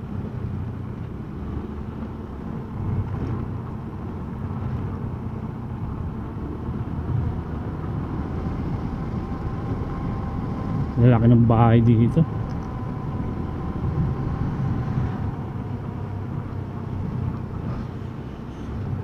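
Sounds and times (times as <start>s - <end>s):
road and wind noise: 0.0s - 19.0s.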